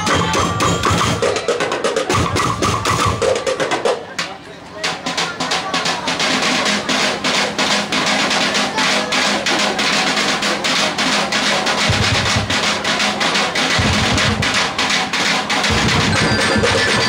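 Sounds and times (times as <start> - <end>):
percussion band playing fast beat: 0.0 - 17.0.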